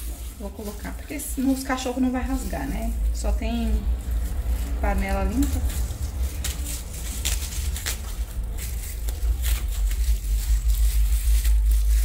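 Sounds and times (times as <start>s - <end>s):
plastic bag rustling and crinkling: 0.0s - 12.0s
steady low rumble: 0.0s - 12.0s.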